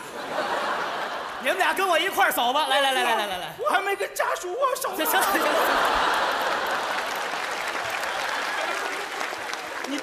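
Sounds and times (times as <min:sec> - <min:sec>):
audience applauding: 0:05.1 - 0:10.0.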